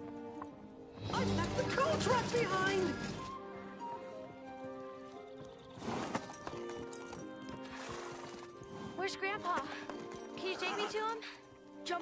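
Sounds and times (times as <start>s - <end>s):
orchestral music: 0.1s - 12.0s.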